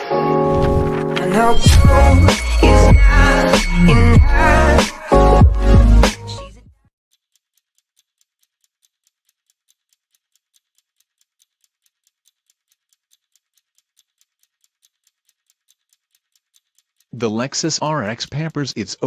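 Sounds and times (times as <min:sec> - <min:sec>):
faint even ticking: 0:01.3 - 0:06.1.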